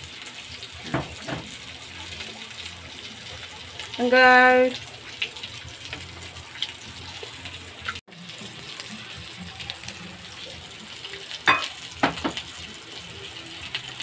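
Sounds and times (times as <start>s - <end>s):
pork chops sizzling in a pan: 0.0s - 14.0s.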